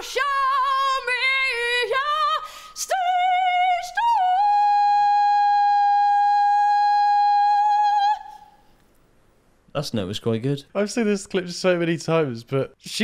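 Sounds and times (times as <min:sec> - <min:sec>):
woman singing unaccompanied: 0:00.0 - 0:08.6.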